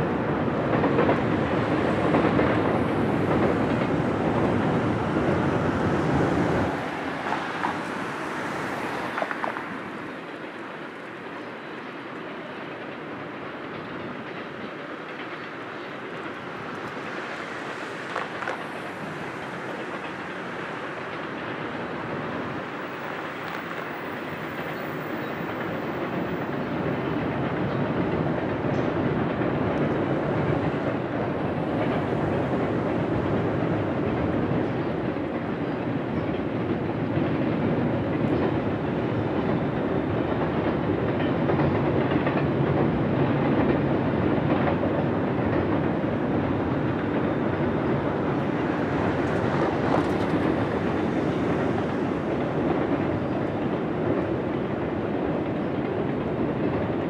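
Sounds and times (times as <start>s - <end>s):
freight train rolling over bridge: 0.0s - 57.0s.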